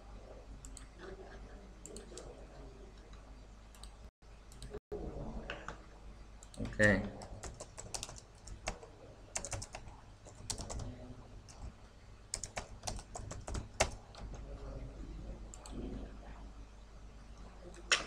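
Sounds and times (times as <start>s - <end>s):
computer keyboard typing: 6.4s - 10.9s, 11.5s - 11.7s, 12.3s - 14.5s.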